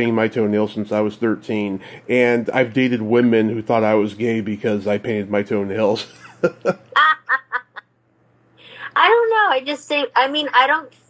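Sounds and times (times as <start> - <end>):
person laughing: 6.0 - 7.8
soft in-breath: 8.5 - 9.0.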